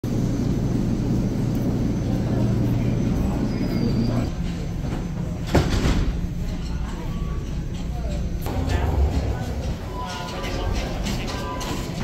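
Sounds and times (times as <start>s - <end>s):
subway train hum and rumble: 0.0s - 12.0s.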